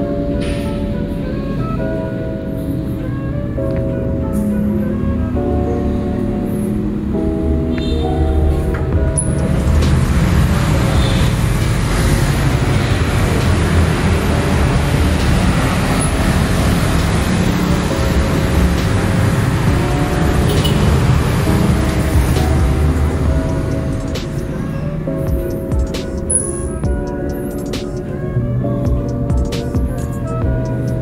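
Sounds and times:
bus passing: 0:00.0 - 0:28.5
background music: 0:00.0 - 0:31.0
motorbikes passing: 0:05.8 - 0:28.4.

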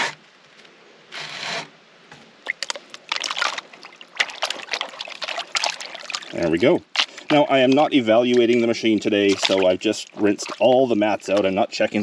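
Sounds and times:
water splashing and sloshing in a pan: 0:02.3 - 0:12.0.

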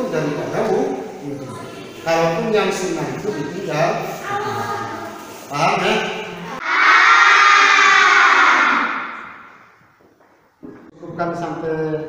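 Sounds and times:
children answering in chorus: 0:06.5 - 0:09.8.

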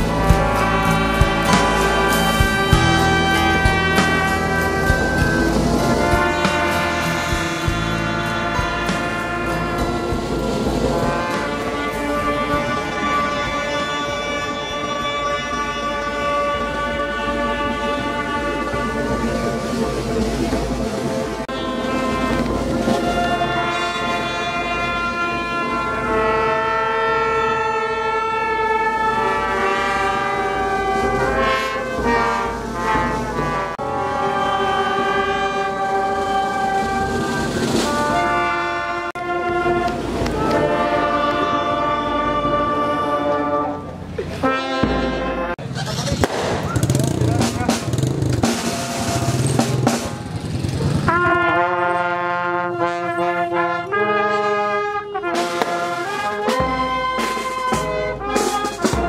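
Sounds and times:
brass marching band playing: 0:00.0 - 0:59.0.

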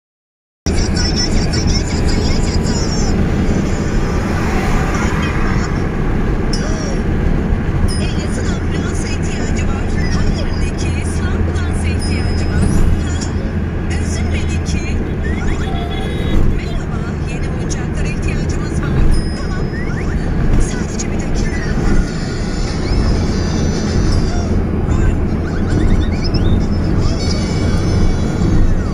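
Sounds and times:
car engine and tyres droning: 0:00.7 - 0:28.9
person speaking: 0:07.8 - 0:28.9.

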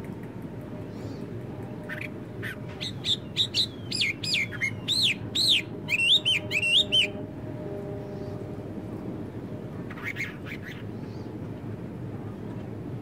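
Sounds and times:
low background noise: 0:00.0 - 0:13.0
songbird whistled singing: 0:01.9 - 0:07.2.

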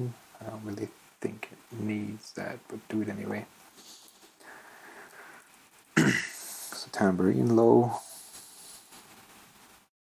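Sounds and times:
faint room tone hiss: 0:00.0 - 0:09.9.

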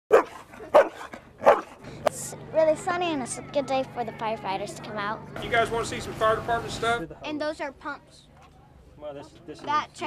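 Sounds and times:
dog barking: 0:00.1 - 0:01.8.

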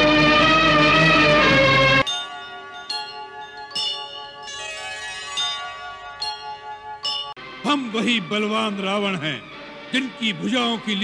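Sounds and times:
bell-like chime tones: 0:02.0 - 0:07.4.

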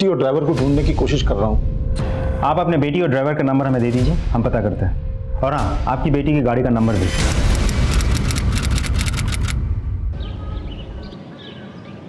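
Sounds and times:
typewriter-like clicks: 0:07.5 - 0:09.6.

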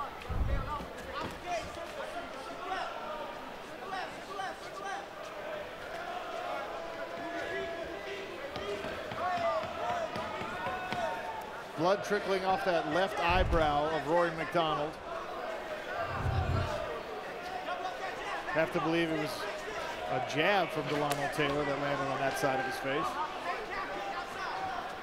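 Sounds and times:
arena ambience: 0:13.0 - 0:17.3
indistinct shouting voices: 0:14.8 - 0:17.1
dull low thump: 0:16.1 - 0:16.8.

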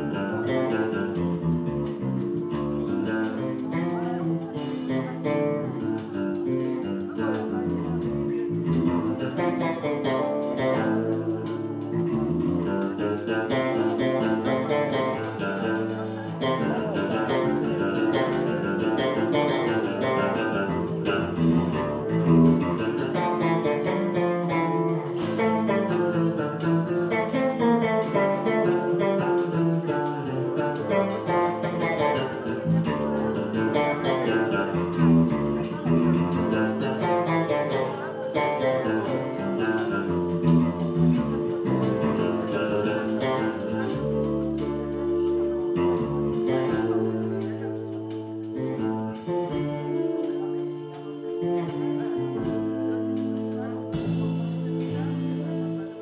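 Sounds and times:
bass: 0:00.0 - 0:56.0
drums with cymbal strokes: 0:00.0 - 0:56.0
electric guitar: 0:00.0 - 0:56.0.

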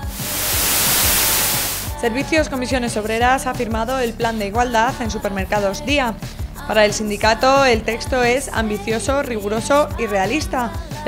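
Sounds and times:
whoosh transition effect: 0:00.0 - 0:01.9
background music with steady beat: 0:00.0 - 0:11.0.

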